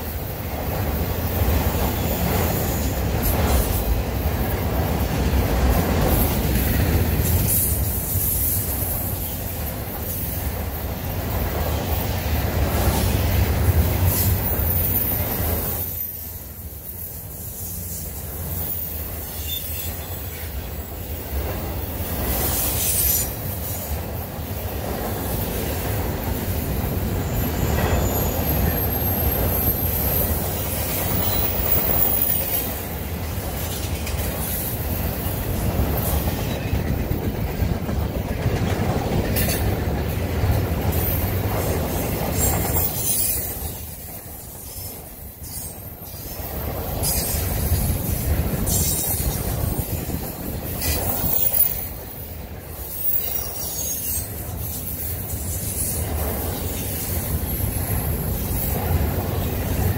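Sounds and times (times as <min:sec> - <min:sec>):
freight train wheels rumbling: 0:00.0 - 0:59.9
high wheel squeals: 0:14.1 - 0:20.5, 0:22.5 - 0:23.8, 0:27.2 - 0:32.8.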